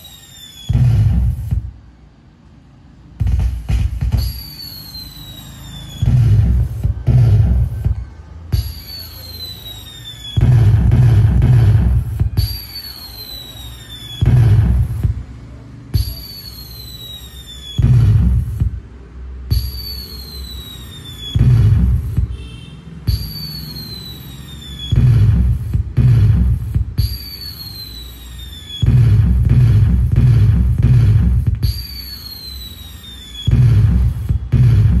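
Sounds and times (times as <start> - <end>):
falling firework whistle: 0.0 - 1.4, 4.1 - 6.9, 8.6 - 14.9, 16.0 - 18.3, 19.5 - 22.5, 23.1 - 25.5, 27.0 - 29.4, 31.6 - 35.0.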